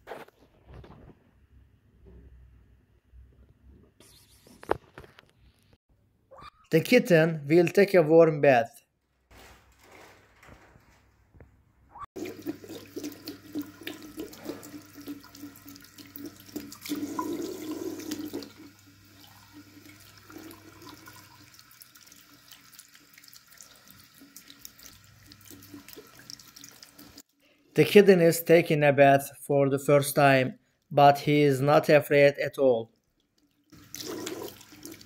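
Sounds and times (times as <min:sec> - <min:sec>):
tap water running into sink: 0:12.2 - 0:27.2, 0:33.7 - 0:35.0.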